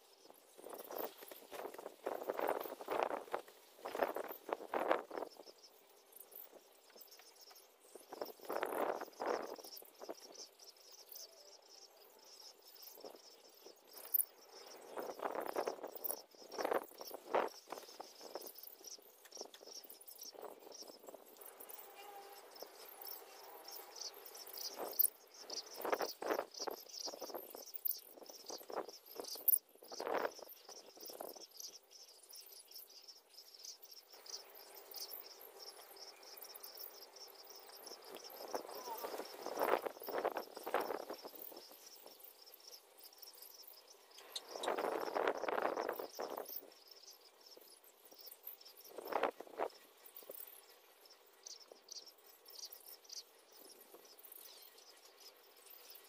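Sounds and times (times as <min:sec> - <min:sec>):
cricket chirping: 0:00.0 - 0:56.0.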